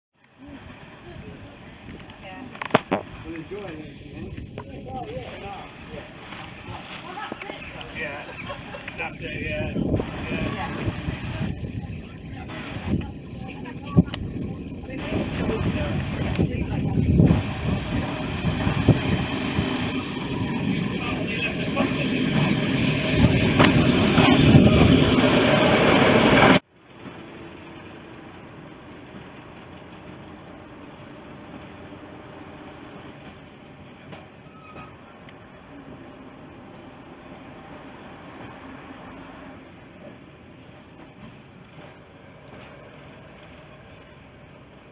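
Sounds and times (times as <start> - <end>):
train engines and wheels on rails: 0.2 - 44.9
train running rumble: 0.3 - 44.9.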